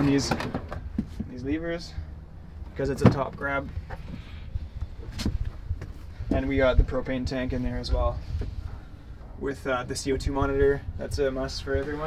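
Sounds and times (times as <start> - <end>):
low uneven rumble: 0.0 - 12.0.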